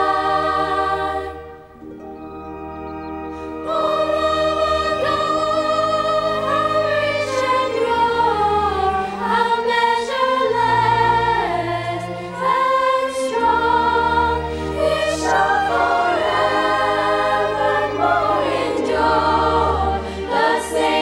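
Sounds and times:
mixed choir singing in harmony: 0:00.0 - 0:01.9, 0:03.1 - 0:21.0
orchestra playing: 0:00.0 - 0:21.0.

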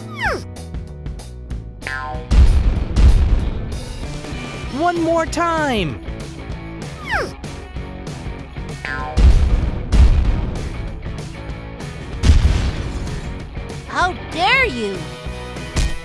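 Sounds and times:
background music: 0:00.0 - 0:16.0
heavy explosion booms: 0:02.3 - 0:04.3, 0:09.2 - 0:11.2, 0:12.1 - 0:13.4.

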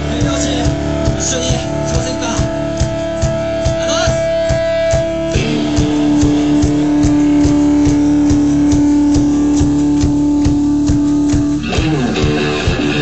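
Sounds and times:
electric guitars: 0:00.0 - 0:13.0
quick drumbeat: 0:00.0 - 0:13.0.

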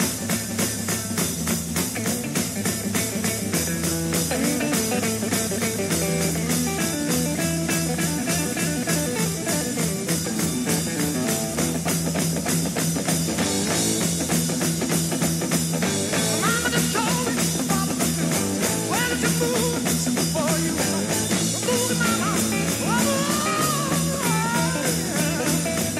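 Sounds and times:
bass guitar: 0:00.0 - 0:25.9
drum kit beat: 0:00.0 - 0:25.9
electric guitar: 0:00.0 - 0:25.9.

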